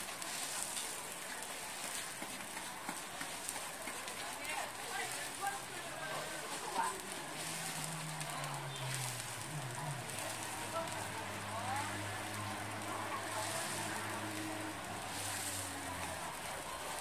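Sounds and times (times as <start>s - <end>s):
rice cakes sizzling in oil: 0.0s - 17.0s
background voices: 4.0s - 17.0s.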